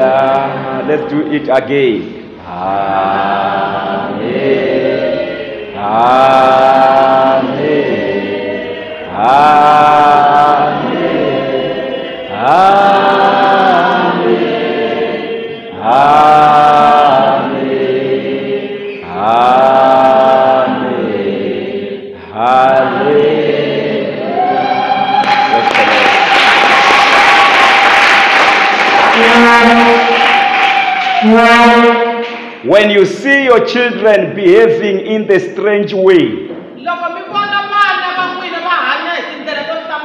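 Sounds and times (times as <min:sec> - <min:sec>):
congregation chanting amen: 0:00.0 - 0:36.6.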